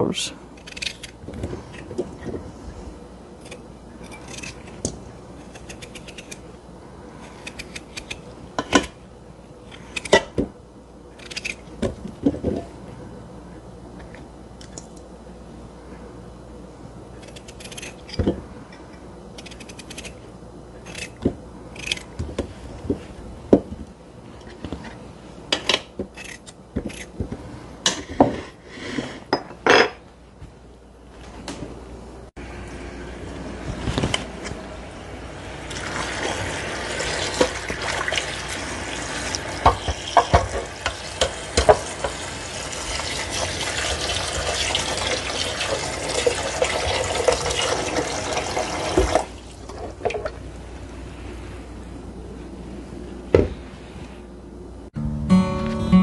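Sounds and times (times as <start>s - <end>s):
knife cutting potatoes: 0.6s - 2.0s, 3.4s - 6.4s, 7.2s - 9.0s, 11.2s - 11.9s, 17.2s - 18.2s, 19.4s - 20.2s, 20.8s - 22.5s, 25.6s - 27.4s
tap water running into pot: 35.7s - 50.2s.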